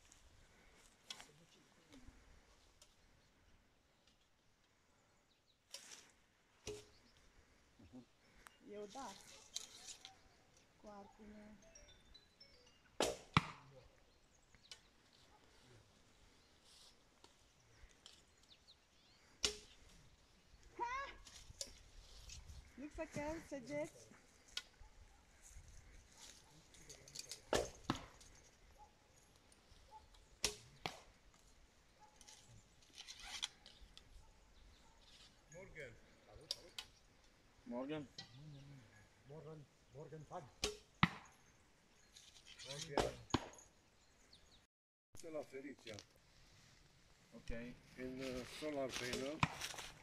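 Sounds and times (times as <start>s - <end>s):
arrow striking with a crack: 13.0s - 13.6s, 19.4s - 19.8s, 27.3s - 28.2s, 30.4s - 31.2s, 40.6s - 41.3s, 42.6s - 43.6s, 48.9s - 49.9s.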